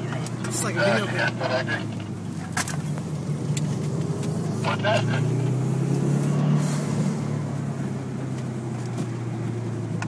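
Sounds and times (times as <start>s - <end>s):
car engine drone: 0.0s - 10.0s
road noise: 0.0s - 10.0s.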